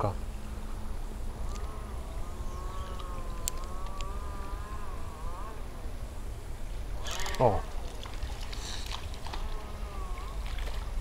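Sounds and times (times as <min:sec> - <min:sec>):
fishing reel gear whine: 0:01.2 - 0:05.7, 0:07.0 - 0:07.5.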